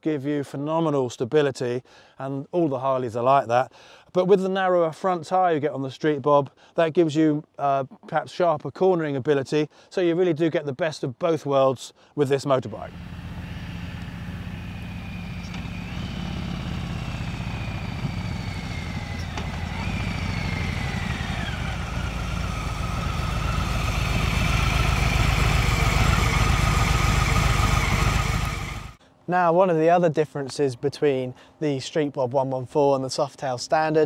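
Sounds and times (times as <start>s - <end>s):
motorcycle engine rumbling: 12.7s - 29.0s.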